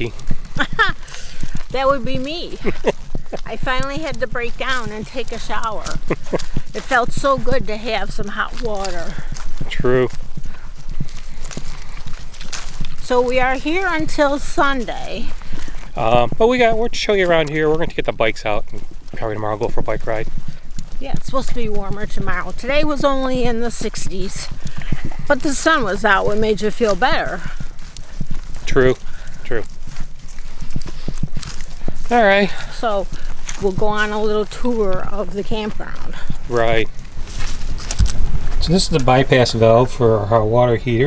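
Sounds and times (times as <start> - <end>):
footsteps on paved road: 0.0 - 41.0.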